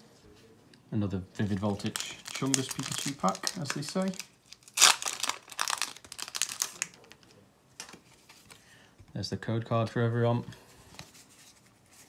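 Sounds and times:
foil wrapper crinkling and tearing: 1.4s - 7.3s.

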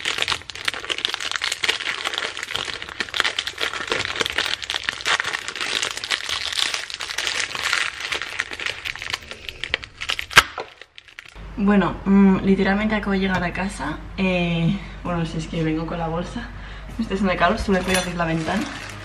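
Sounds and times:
plastic wrapper crinkling: 0.0s - 11.4s, 17.8s - 19.0s.

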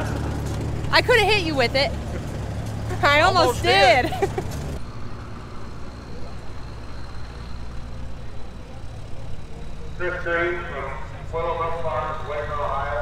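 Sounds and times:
steady low rumble: 0.0s - 4.9s
person's voice: 0.9s - 1.9s, 2.9s - 4.4s.

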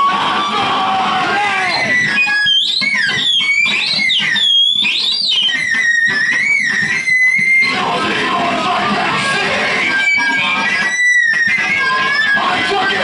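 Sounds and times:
squealing electronic tones: 0.0s - 13.0s.

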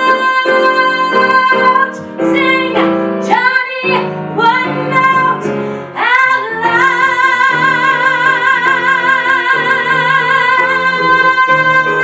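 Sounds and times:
piano accompaniment: 0.0s - 12.0s
woman singing into microphone: 0.0s - 12.0s.

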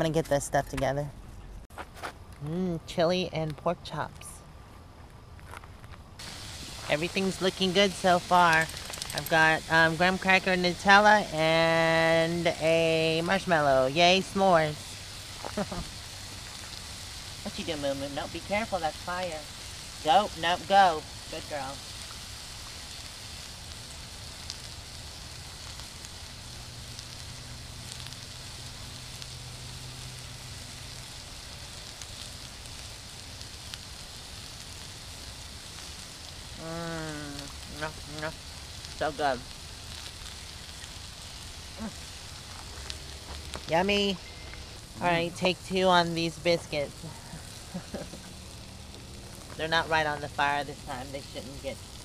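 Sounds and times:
woman speaking: 0.0s - 1.2s, 2.4s - 4.4s, 6.7s - 14.9s, 17.5s - 21.8s, 36.6s - 38.4s, 39.0s - 39.4s, 43.7s - 44.4s, 45.0s - 48.2s, 49.6s - 51.8s
campfire crackling: 0.0s - 52.0s
food sizzling in a skillet: 6.2s - 52.0s.

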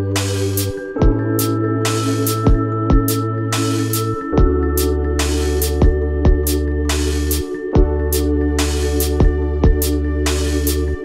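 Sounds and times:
lofi hip-hop instrumental: 0.0s - 11.0s.

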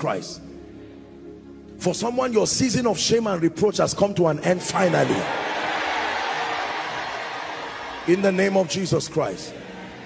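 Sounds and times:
crowd cheering and shouting: 4.7s - 10.0s.

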